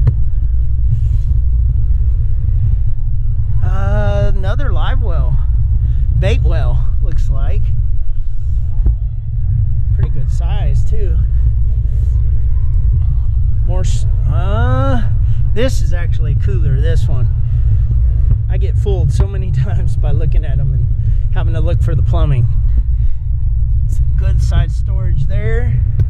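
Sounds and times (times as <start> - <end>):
steady low rumble: 0.0 - 26.0.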